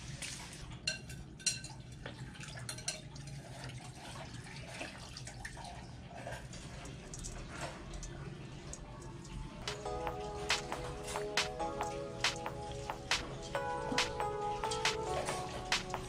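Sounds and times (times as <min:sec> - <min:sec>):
liquid pouring and splashing: 0:02.1 - 0:07.9.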